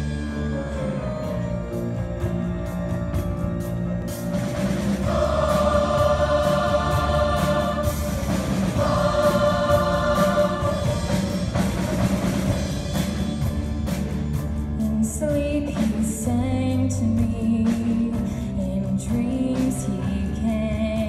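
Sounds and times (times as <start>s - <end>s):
low instrumental accompaniment: 0.0s - 21.0s
choir singing held notes: 4.5s - 12.7s.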